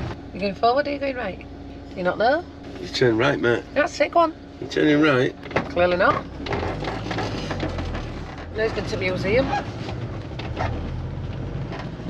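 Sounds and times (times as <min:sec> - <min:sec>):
motorhome engine running: 0:00.0 - 0:12.0
road noise: 0:00.0 - 0:12.0.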